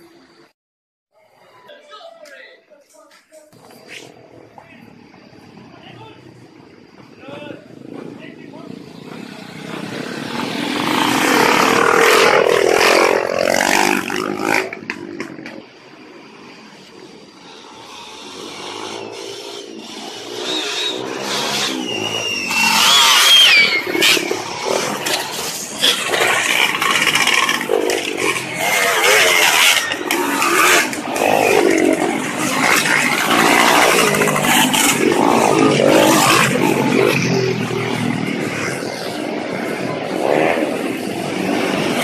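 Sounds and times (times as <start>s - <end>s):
dirt bike engines passing: 0.0s - 0.5s, 1.2s - 42.0s.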